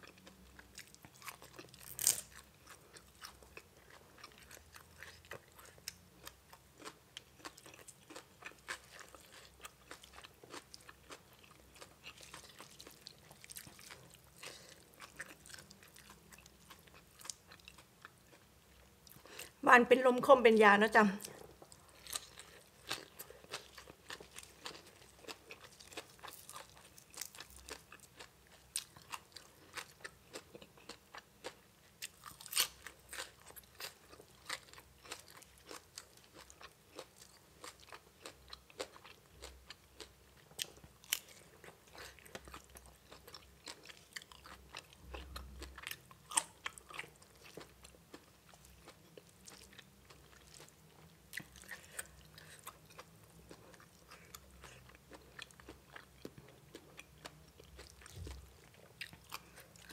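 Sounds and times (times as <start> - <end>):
person chewing crunchy food: 0.0 - 19.6, 21.2 - 59.9.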